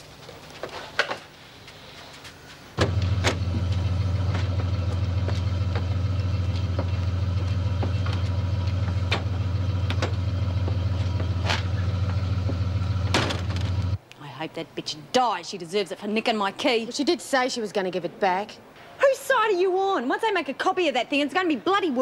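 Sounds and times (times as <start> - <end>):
engine idling with low hum: 2.8 - 14.0.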